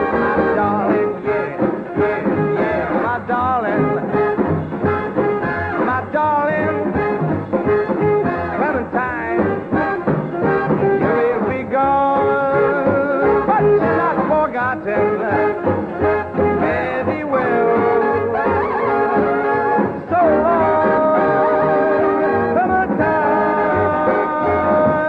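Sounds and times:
person singing: 0:00.0 - 0:04.3, 0:08.2 - 0:25.0
swing band music: 0:00.0 - 0:25.0.

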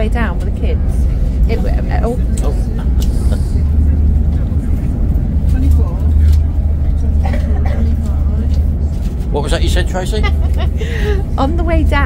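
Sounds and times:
faint passenger voices: 0:00.0 - 0:12.0
train rumbling: 0:00.0 - 0:12.0.

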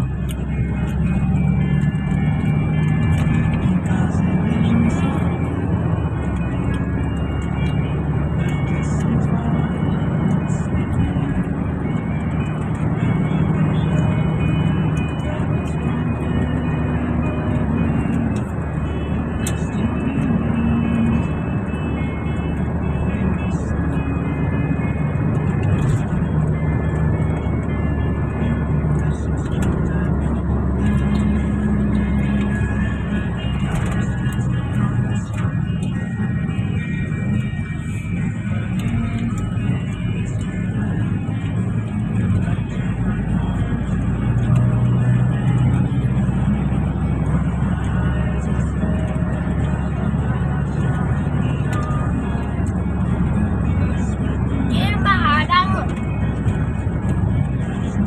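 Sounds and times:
music playing: 0:00.0 - 0:58.0
van engine and road rumble: 0:00.0 - 0:58.0
indistinct voices: 0:47.2 - 0:56.1.

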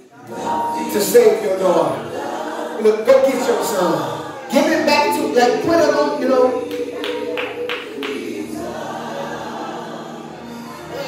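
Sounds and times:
group singing gospel chord: 0:00.0 - 0:11.0.

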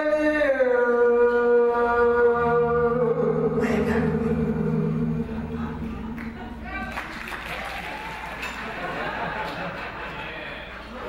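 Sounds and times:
man singing into a microphone: 0:00.0 - 0:06.0
low steady note: 0:02.3 - 0:06.9.

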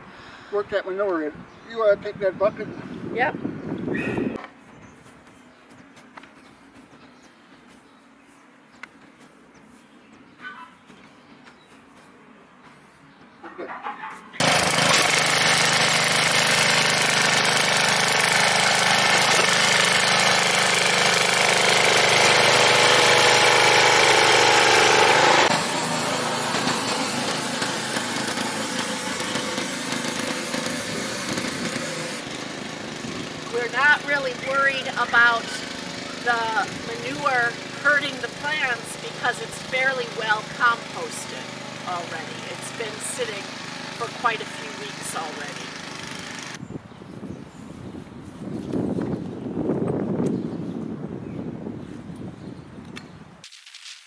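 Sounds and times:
rototiller engine running under load: 0:14.4 - 0:46.6.

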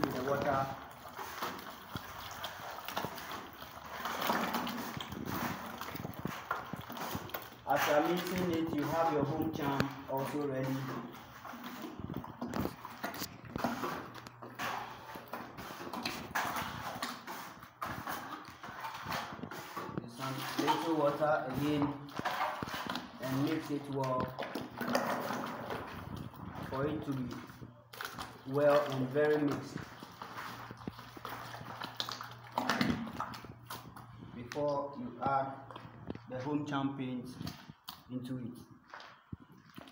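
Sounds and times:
hand stirring plaster in bucket: 0:00.0 - 0:39.9.

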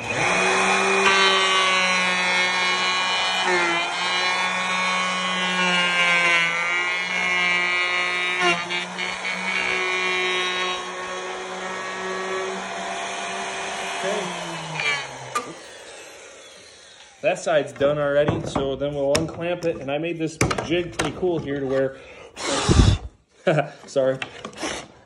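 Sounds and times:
wood router whining: 0:00.0 - 0:19.8, 0:21.0 - 0:23.1
router bit knocking on wood: 0:17.7 - 0:21.6.

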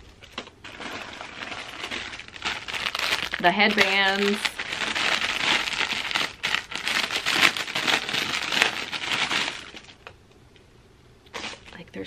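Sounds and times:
plastic packaging crinkling: 0:00.2 - 0:10.2, 0:11.3 - 0:11.8.

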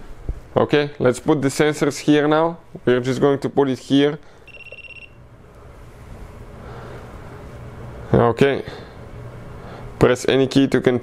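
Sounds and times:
high electronic beep: 0:04.5 - 0:05.2.

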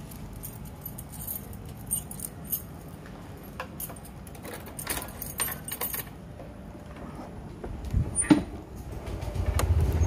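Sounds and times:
keys jangling: 0:00.0 - 0:06.2.

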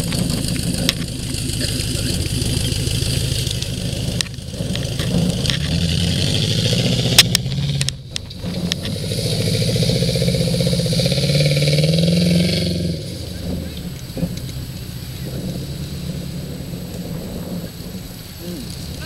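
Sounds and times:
off-road vehicle engine under load: 0:00.0 - 0:19.0.

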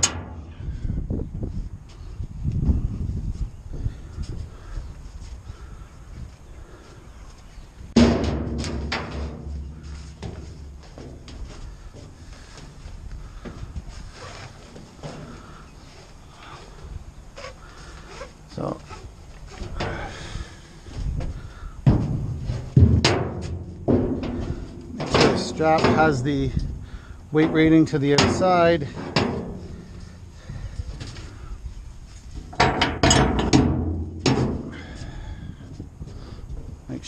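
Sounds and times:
hollow thud on steel bin: 0:00.0 - 0:00.8, 0:08.0 - 0:11.4, 0:21.8 - 0:26.8, 0:32.5 - 0:34.8
knocks and clinks of hardware: 0:32.5 - 0:34.6.

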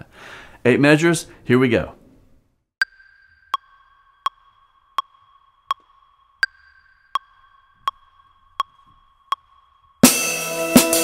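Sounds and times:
metronome beeps: 0:02.8 - 0:10.0.

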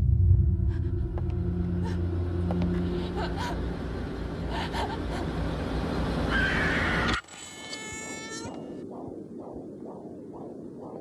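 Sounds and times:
buzzing rumble with rising whine: 0:00.0 - 0:06.6
soft pulsing sound: 0:08.5 - 0:11.0.

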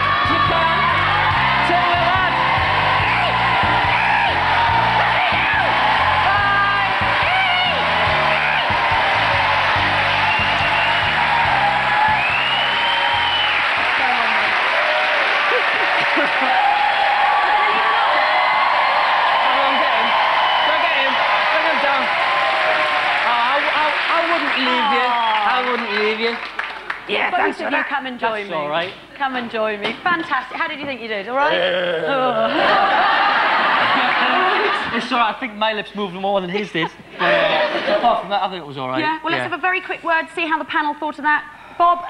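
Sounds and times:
band music: 0:00.0 - 0:14.4
audience applauding and cheering: 0:00.0 - 0:27.6, 0:32.6 - 0:35.4.

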